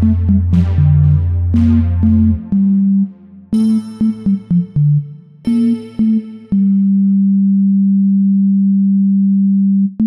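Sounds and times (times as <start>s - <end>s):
low synthesizer note held: 0.0s - 10.0s.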